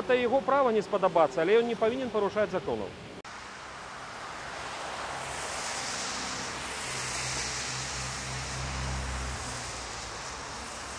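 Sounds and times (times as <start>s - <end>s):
steady street hiss: 0.0s - 10.9s
vehicle engine hum: 3.3s - 10.9s.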